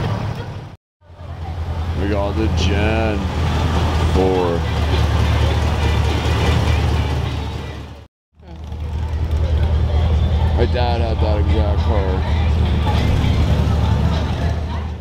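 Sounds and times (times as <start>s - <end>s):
car engine rumbling: 0.0s - 15.0s
voices: 0.0s - 15.0s.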